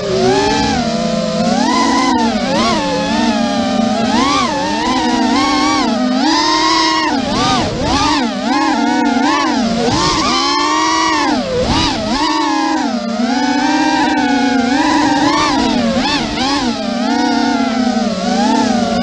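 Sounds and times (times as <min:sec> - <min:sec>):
quadcopter motors whining: 0:00.0 - 0:19.0.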